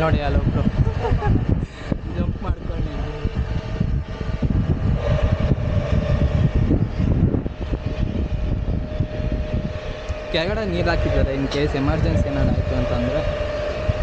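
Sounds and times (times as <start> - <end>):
wind buffeting microphone: 0.0 - 14.0
steady held note: 1.5 - 14.0.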